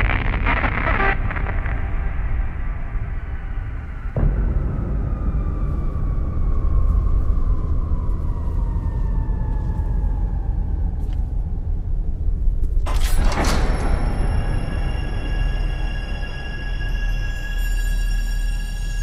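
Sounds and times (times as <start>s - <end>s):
deep low rumble: 0.0s - 12.9s
sudden hit: 1.0s - 8.0s.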